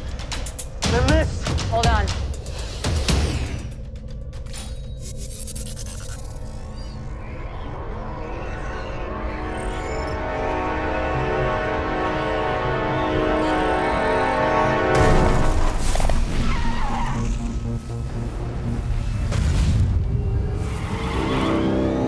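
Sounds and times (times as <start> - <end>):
tense orchestral film score: 0.0 - 22.0.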